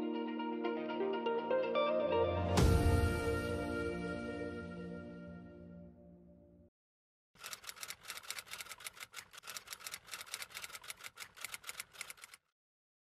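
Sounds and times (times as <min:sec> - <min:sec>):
typewriter keystrokes clacking: 0:07.4 - 0:12.5.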